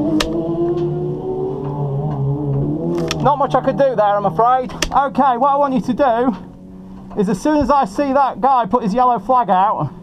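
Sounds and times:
race car engine running: 0:00.0 - 0:10.0.

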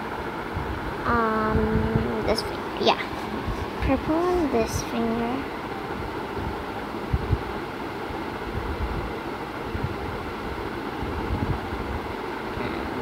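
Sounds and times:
background hiss and rumble: 0:00.0 - 0:13.0.

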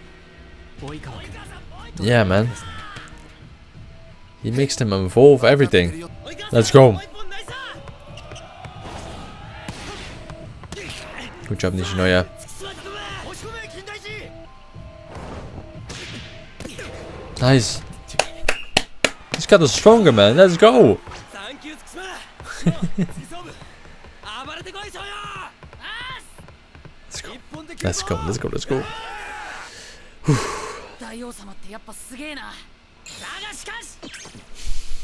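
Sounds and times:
background music: 0:00.0 - 0:31.0
man laughing: 0:22.4 - 0:23.7, 0:30.2 - 0:30.7
person shouting: 0:28.1 - 0:29.6.

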